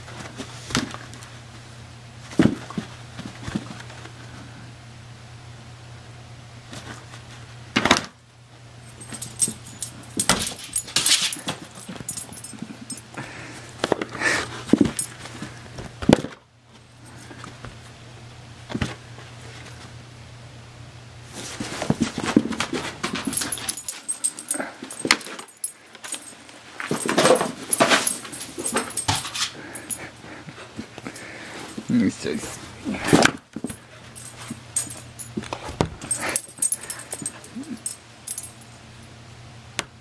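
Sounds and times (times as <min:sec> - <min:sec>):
metallic jingles: 0:08.9 - 0:13.2, 0:23.0 - 0:30.2, 0:33.7 - 0:35.4, 0:36.0 - 0:38.8
dogs snuffling and scuffling: 0:21.3 - 0:38.4.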